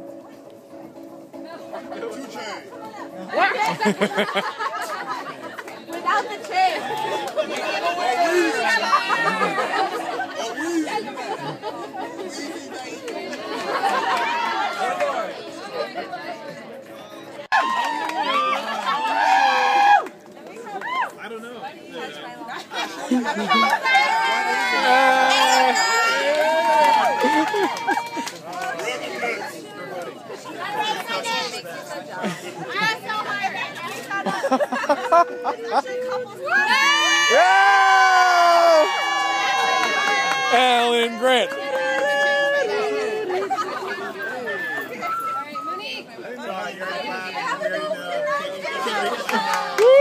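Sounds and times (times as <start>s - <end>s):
crowd of overlapping voices: 0.0s - 50.0s.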